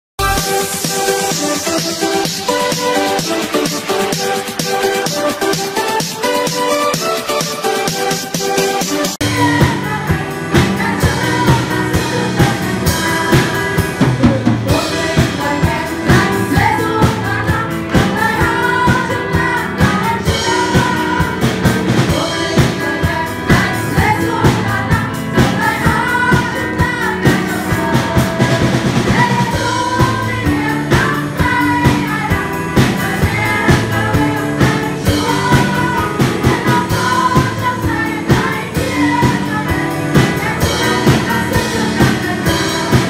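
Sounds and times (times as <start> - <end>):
church band playing hymn: 0.2 - 43.0
bass drum and snare beat: 7.4 - 43.0.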